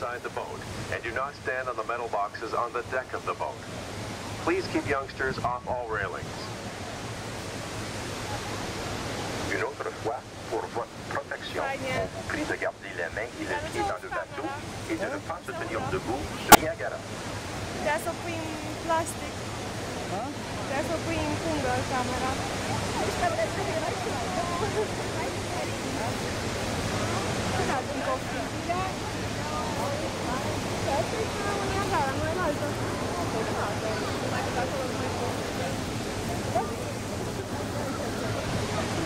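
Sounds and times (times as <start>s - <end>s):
rush of falling water: 0.0s - 39.0s.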